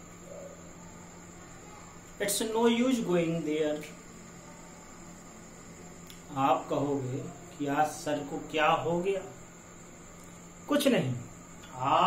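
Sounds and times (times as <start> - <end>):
faint electrical hum: 0.0 - 12.0
low steady hiss: 0.0 - 12.0.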